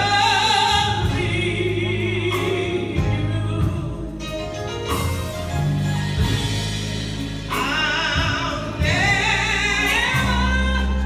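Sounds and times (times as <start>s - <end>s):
woman singing gospel solo: 0.0s - 4.5s, 7.4s - 11.0s
low instrumental accompaniment: 0.0s - 11.0s.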